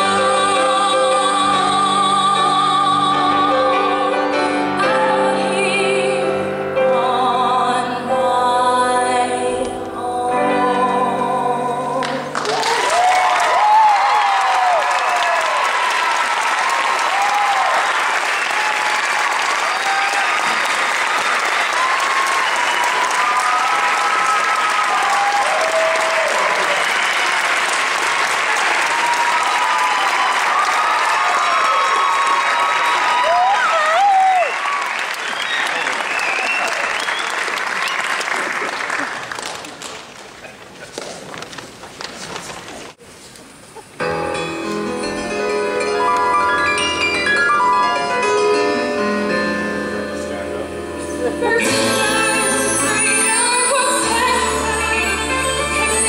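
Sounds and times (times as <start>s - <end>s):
solo song with piano: 0.0s - 15.9s, 44.0s - 56.0s
audience applause and cheering: 12.3s - 41.1s
shouted whoops: 12.5s - 27.5s, 28.7s - 37.1s.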